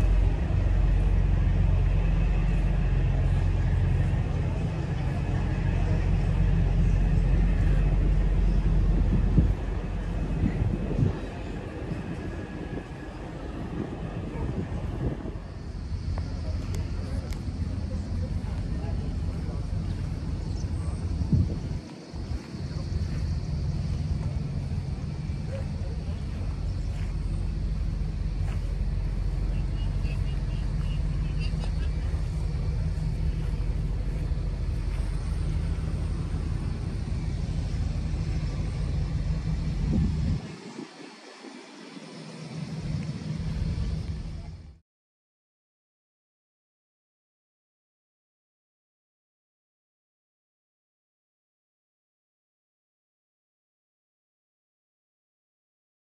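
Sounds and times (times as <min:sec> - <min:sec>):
faint voices: 0:00.0 - 0:44.8
steady low rumble: 0:00.0 - 0:44.8.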